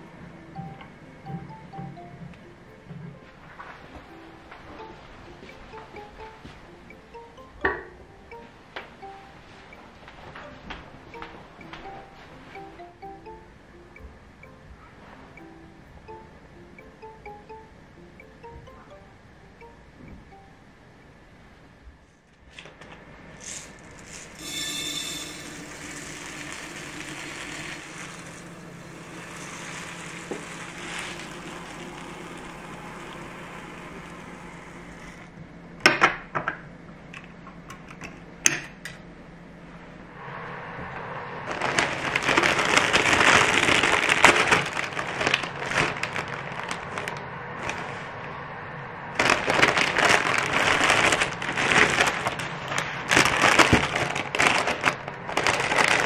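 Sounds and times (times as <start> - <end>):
rice pouring into glass jar: 23.4 - 33.5
plastic wrap crinkling: 25.0 - 34.4, 41.5 - 48.1, 49.2 - 56.0
plastic bag crinkled and torn: 25.1 - 33.0, 41.5 - 48.0, 49.2 - 56.0.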